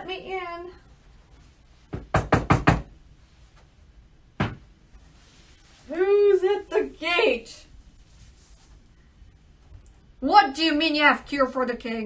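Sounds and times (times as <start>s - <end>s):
knocking on a door: 1.9s - 2.9s, 4.4s - 4.6s.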